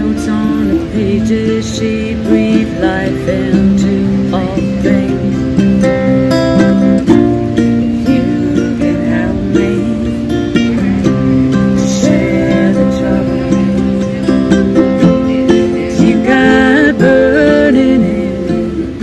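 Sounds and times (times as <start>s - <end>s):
acoustic guitar: 0.0s - 19.0s
ukulele: 0.0s - 19.0s.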